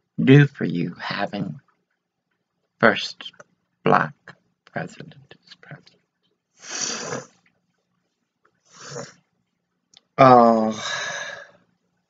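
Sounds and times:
woman sniffing: 0:06.6 - 0:07.3, 0:08.7 - 0:09.1.

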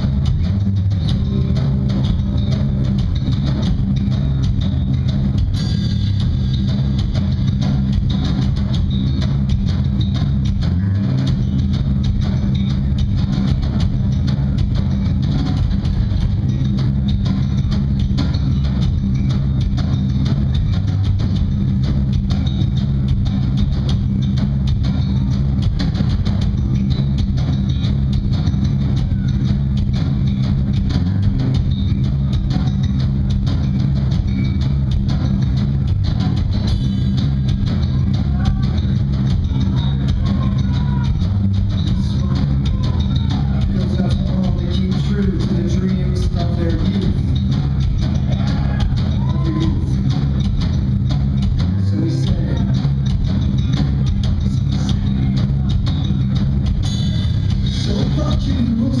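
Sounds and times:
bass guitar: 0:00.0 - 0:59.0
distorted electric guitars: 0:00.0 - 0:59.0
rock band playing: 0:00.0 - 0:59.0.

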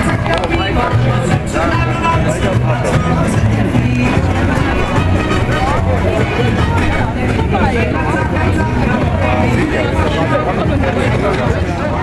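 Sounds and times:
party music with pulsing bass: 0:00.0 - 0:11.7
crowd chatter: 0:00.0 - 0:12.0.

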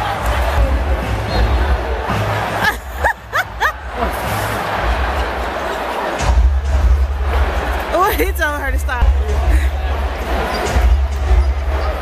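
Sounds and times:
loud music with heavy bass: 0:00.0 - 0:05.6, 0:06.2 - 0:12.0
arena crowd murmur: 0:00.0 - 0:12.0.

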